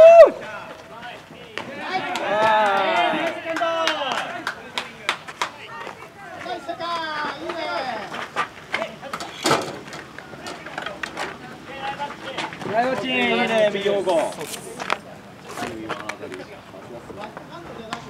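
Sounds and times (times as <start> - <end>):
voices shouting: 0.0 - 14.4.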